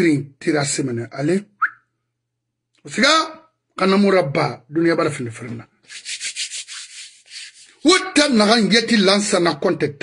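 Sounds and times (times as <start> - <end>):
hand rubbing phone microphone: 5.9 - 7.9.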